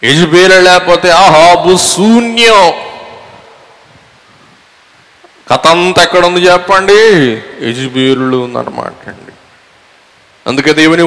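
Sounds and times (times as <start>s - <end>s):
man speaking: 0.0s - 3.0s, 5.4s - 9.4s, 10.4s - 11.0s
faint room hiss: 0.0s - 11.0s.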